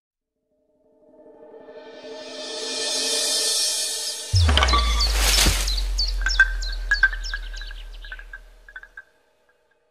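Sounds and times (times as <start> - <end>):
deep bass tone: 4.4 - 8.8
bird-like chirps and ticks: 4.5 - 9.1.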